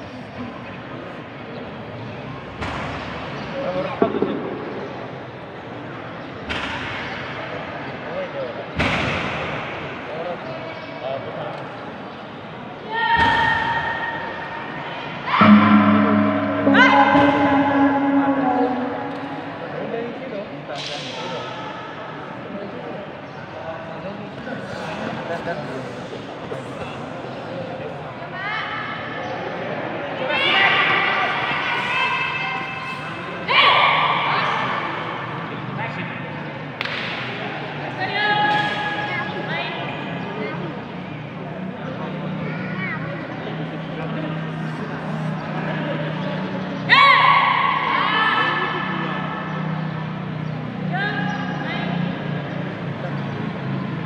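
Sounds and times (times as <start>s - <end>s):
background hubbub: 0.0s - 54.0s
gong struck and ringing: 15.4s - 20.3s.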